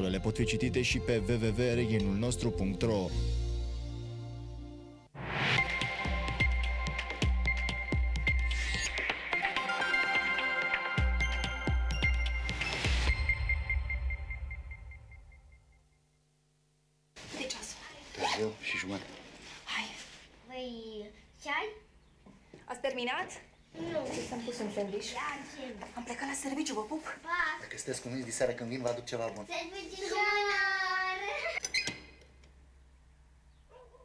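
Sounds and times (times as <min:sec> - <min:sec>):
zipper rasping: 0:18.1 - 0:19.6.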